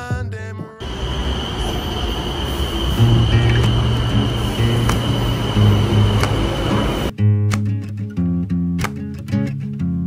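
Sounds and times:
high train whine: 0:00.8 - 0:07.1
metro train rushing: 0:00.8 - 0:07.1.

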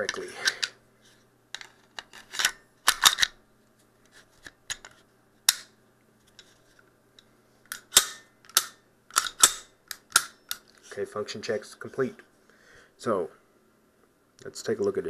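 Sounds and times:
pistol slide racking: 0:01.6 - 0:03.4, 0:07.7 - 0:10.7
trigger clicks: 0:07.7 - 0:10.6.

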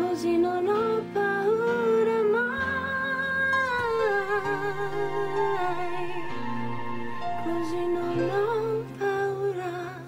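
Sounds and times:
woman singing long held notes: 0:02.6 - 0:09.3
low backing chords: 0:03.7 - 0:08.9.

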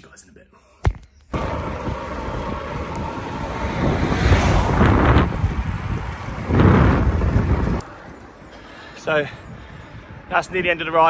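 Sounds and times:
wind buffeting microphone: 0:01.3 - 0:11.0.

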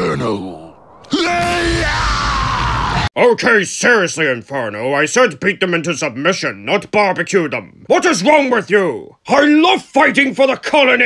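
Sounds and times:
cartoon flamethrower blast: 0:00.7 - 0:03.1
person yelling: 0:01.1 - 0:03.0.

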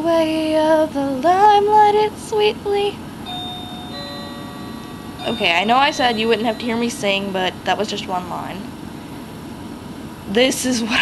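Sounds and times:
faint background hiss: 0:00.0 - 0:11.0
sustained chime tones: 0:03.2 - 0:08.6.

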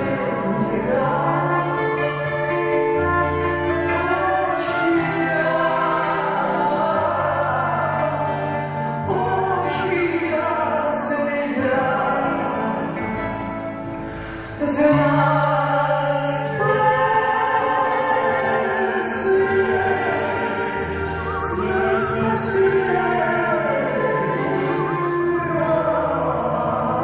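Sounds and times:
woman and man singing in harmony: 0:00.0 - 0:13.4, 0:14.2 - 0:27.0
acoustic guitar: 0:00.0 - 0:27.0.

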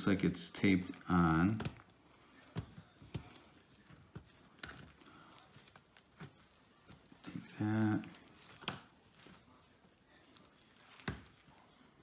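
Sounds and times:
faint clicks and taps on laptop: 0:01.4 - 0:09.4.

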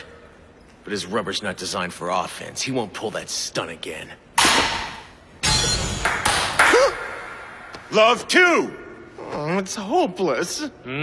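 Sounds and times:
table tennis ball hit: 0:04.4 - 0:07.4.

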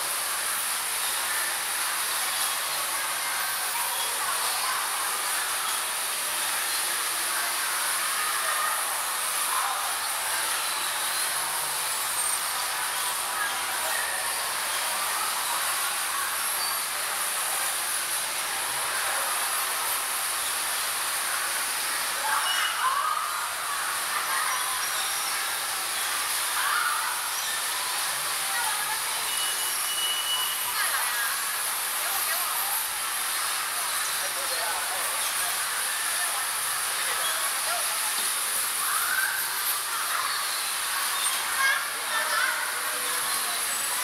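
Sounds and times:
bumper cars running hiss: 0:00.0 - 0:44.0.

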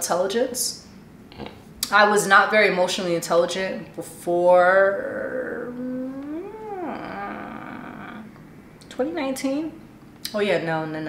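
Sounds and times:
woman humming hmmm: 0:04.8 - 0:08.4.

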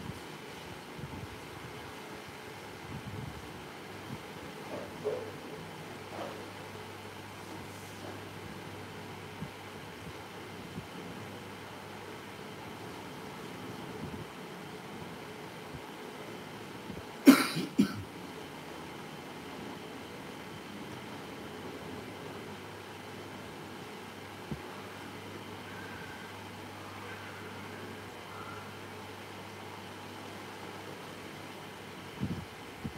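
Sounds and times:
low room hum: 0:00.0 - 0:32.9
person coughing: 0:17.3 - 0:18.0.

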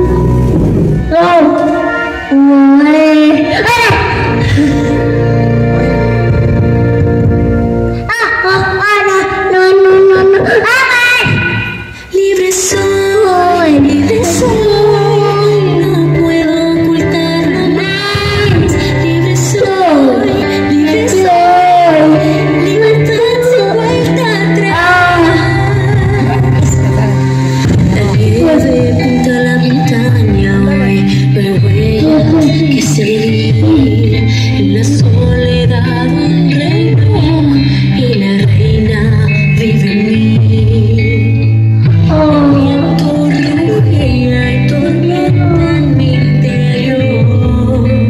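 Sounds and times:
sustained chord with deep bass: 0:00.0 - 0:08.1, 0:18.2 - 0:36.4
person singing with accompaniment: 0:00.0 - 0:48.0.

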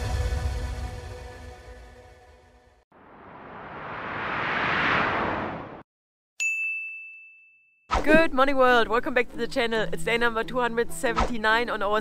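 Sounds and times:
bright ding: 0:06.4 - 0:07.7.

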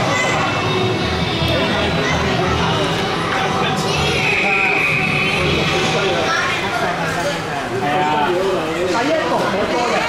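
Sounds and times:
steady high-pitched tone: 0:00.0 - 0:06.9
people talking: 0:00.0 - 0:10.0.

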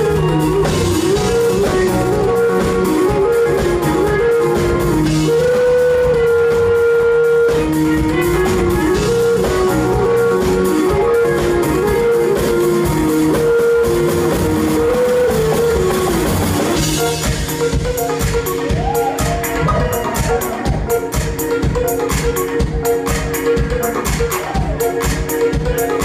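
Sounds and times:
drum kit: 0:00.0 - 0:26.0
keyboards: 0:00.0 - 0:26.0
wind instrument melody: 0:00.0 - 0:26.0.

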